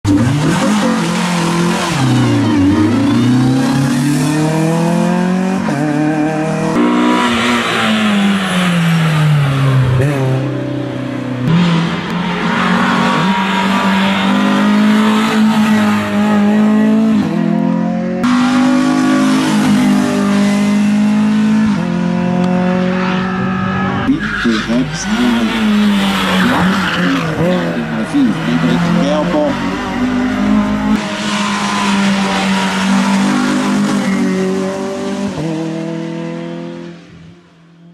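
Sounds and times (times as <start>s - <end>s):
race car engine revving: 0.0s - 37.3s.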